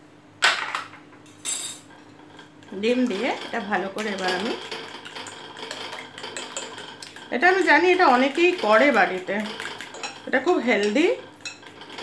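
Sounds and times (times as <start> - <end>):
clink on ceramic bowl: 1.4 - 1.9.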